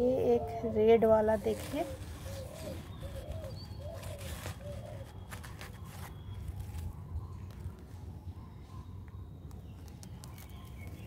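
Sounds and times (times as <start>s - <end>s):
bird cooing: 0.0s - 7.6s.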